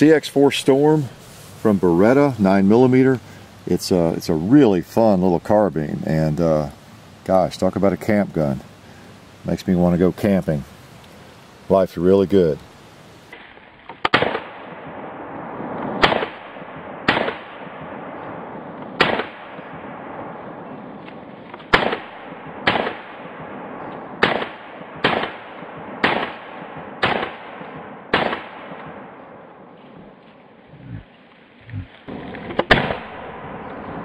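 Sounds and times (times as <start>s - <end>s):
gunshots with echo: 14.1s - 20.5s, 21.7s - 29.2s, 32.1s - 34.0s.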